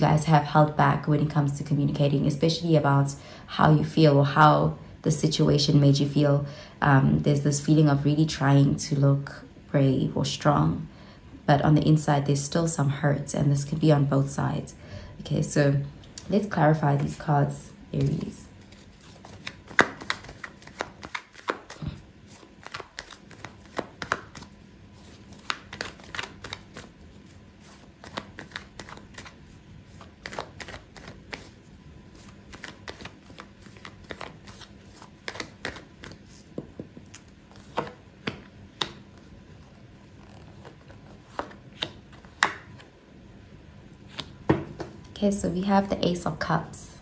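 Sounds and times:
cards being shuffled: 0:18.0 - 0:42.9, 0:44.1 - 0:45.0.

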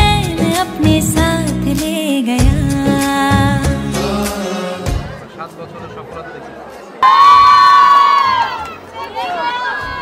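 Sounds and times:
women ululating: 0:07.0 - 0:10.0.

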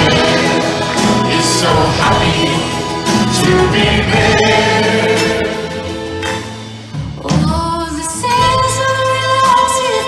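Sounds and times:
people singing together: 0:00.0 - 0:06.5
accordion: 0:00.0 - 0:06.9
guitars: 0:00.0 - 0:10.0.

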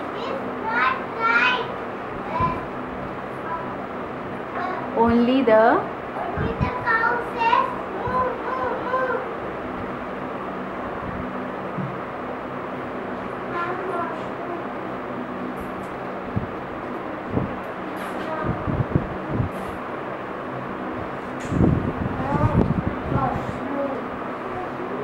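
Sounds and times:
room hum and rushing noise: 0:00.0 - 0:25.0
faint children's voices: 0:13.4 - 0:14.8, 0:18.0 - 0:18.9, 0:22.1 - 0:25.0.

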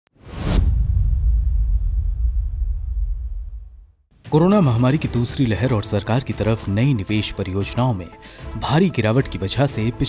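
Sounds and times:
whoosh: 0:00.2 - 0:04.1
deep low rumble: 0:00.6 - 0:04.1.

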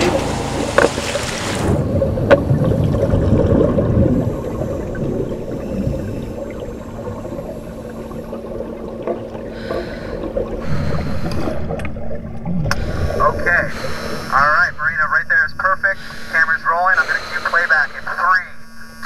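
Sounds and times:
underwater regulator bubbling: 0:00.0 - 0:14.8.

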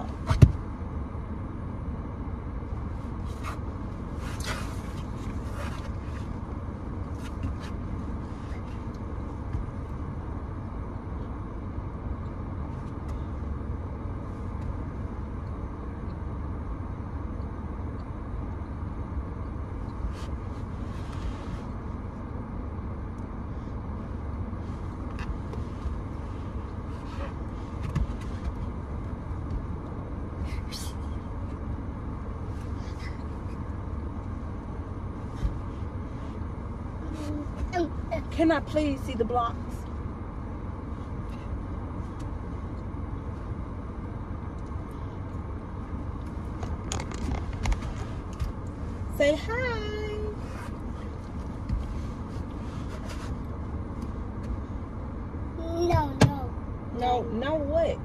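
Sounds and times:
car cabin rumble: 0:00.0 - 0:58.0
faint clicks and rustles: 0:44.5 - 0:49.2.

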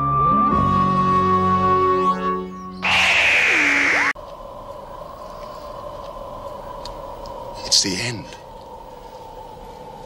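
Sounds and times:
loud burst of hiss: 0:02.8 - 0:04.2.

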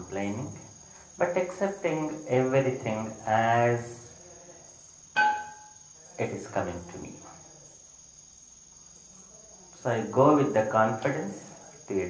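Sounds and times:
faint background hiss: 0:00.0 - 0:12.0
steady high-pitched tone: 0:05.2 - 0:05.8.

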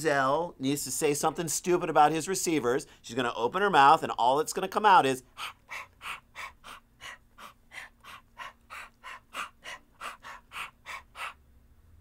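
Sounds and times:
man making breathy huffs: 0:05.2 - 0:11.4.

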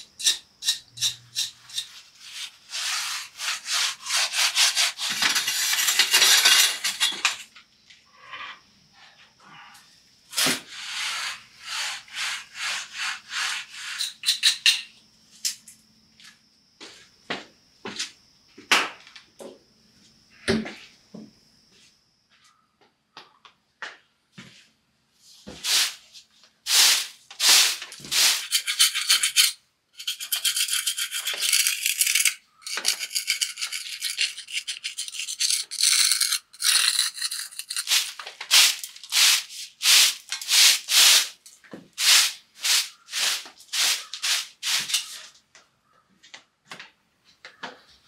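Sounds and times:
metal blade scraping rock and concrete: 0:00.2 - 0:07.4, 0:27.4 - 0:41.2.

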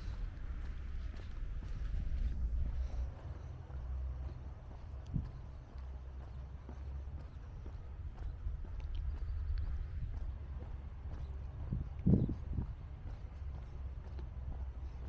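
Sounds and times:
footsteps on a path: 0:00.0 - 0:15.0
steady low rumble: 0:00.0 - 0:15.0.

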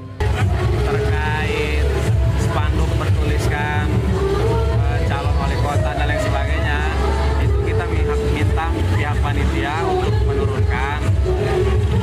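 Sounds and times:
man speaking: 0:00.8 - 0:04.1, 0:04.8 - 0:11.2.

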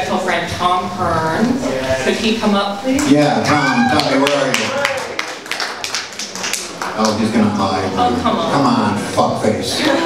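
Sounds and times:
faint crowd chatter: 0:00.0 - 0:10.0
audience hand claps: 0:03.0 - 0:07.7.

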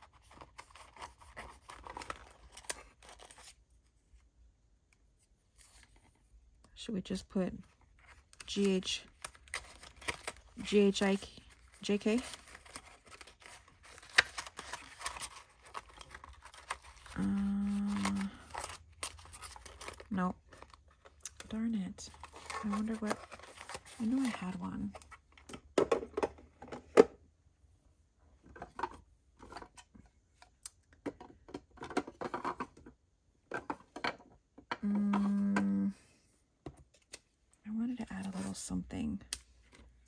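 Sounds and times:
paper and card rustling: 0:00.0 - 0:03.6, 0:07.6 - 0:25.5.

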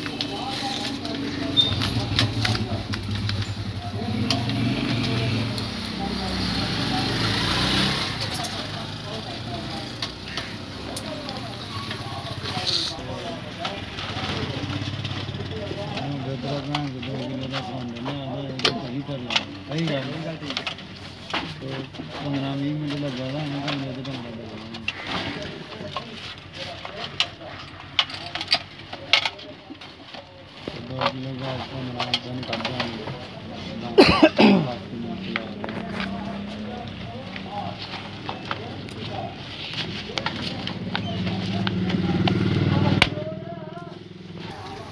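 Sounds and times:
background voices talking: 0:00.0 - 0:44.9.

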